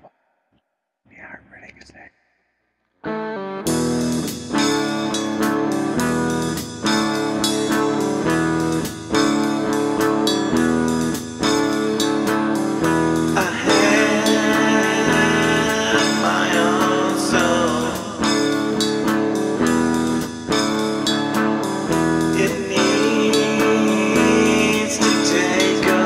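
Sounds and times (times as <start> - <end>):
faint whispered voice: 1.1 - 2.1
electric guitar chords: 3.0 - 26.0
rock band playing: 3.1 - 15.2, 17.9 - 23.3.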